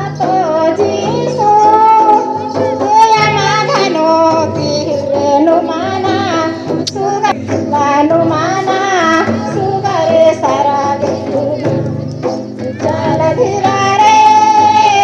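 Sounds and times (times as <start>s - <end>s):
high-pitched singing: 0.0s - 15.0s
musical accompaniment: 0.0s - 15.0s.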